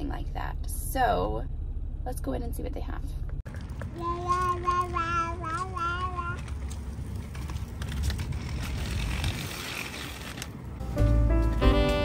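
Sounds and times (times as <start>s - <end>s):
stroller wheels rolling on concrete: 3.4s - 12.0s.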